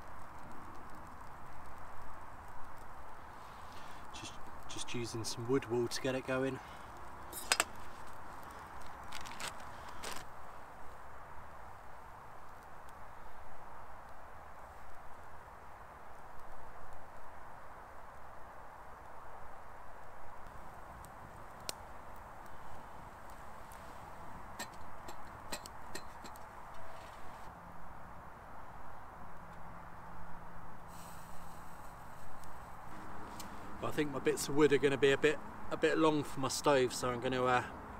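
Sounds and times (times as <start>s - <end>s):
twig fire crackling and popping: 0.0s - 27.5s, 30.8s - 37.8s
rushing hiss: 30.9s - 33.8s.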